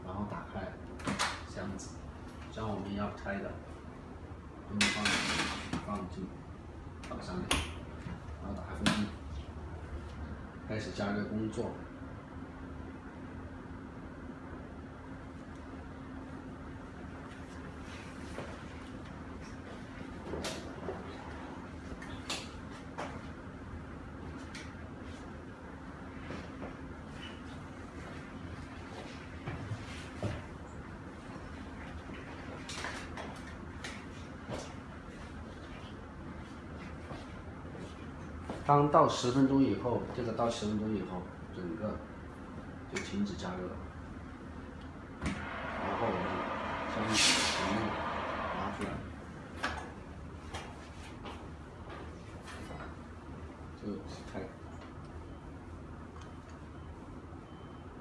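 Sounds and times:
oven blower fan hum: 0.0 - 58.0.

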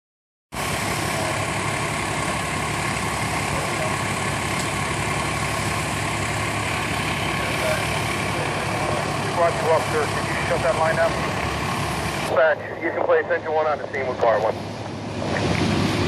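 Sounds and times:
diesel engine idling: 0.5 - 16.0.

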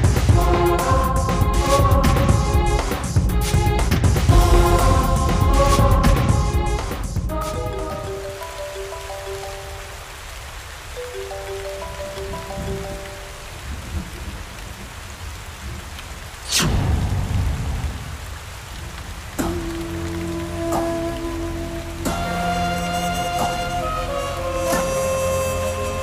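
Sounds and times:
heavy rain falling: 0.0 - 26.0
sweep falling high to low: 4.3 - 6.7
melodic background score: 4.3 - 10.2, 10.9 - 14.0.

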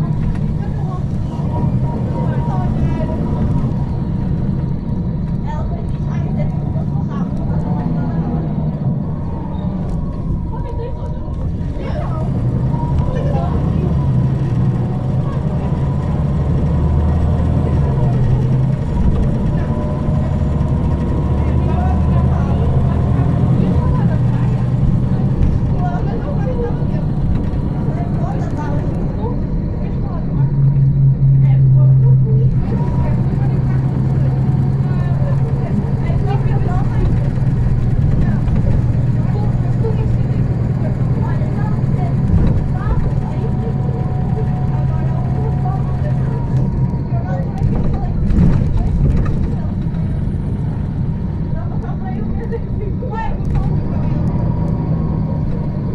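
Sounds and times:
bus engine drone: 0.0 - 55.9
indistinct voices: 0.0 - 55.9.

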